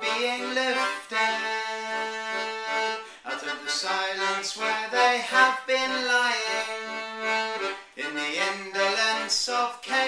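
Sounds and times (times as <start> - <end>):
piano accordion chord: 0.0 - 9.2.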